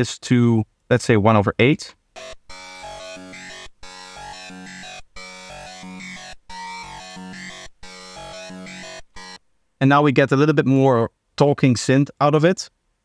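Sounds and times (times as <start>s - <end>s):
talking synth psytrance line: 2.2s - 9.4s.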